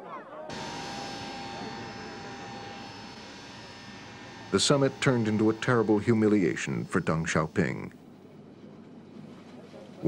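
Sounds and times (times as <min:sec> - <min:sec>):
jet engines whining: 0:00.5 - 0:07.9.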